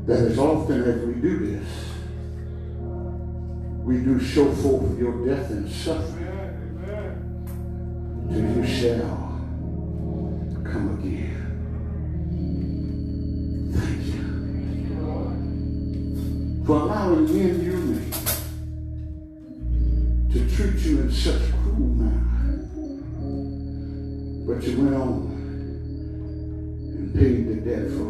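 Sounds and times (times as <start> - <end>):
man's voice: 0.0 - 2.2, 3.8 - 7.3, 8.2 - 9.6, 10.6 - 11.7, 13.7 - 15.6, 16.6 - 18.3, 20.2 - 23.0, 24.4 - 25.6, 26.9 - 28.0
church organ chords: 0.0 - 28.0.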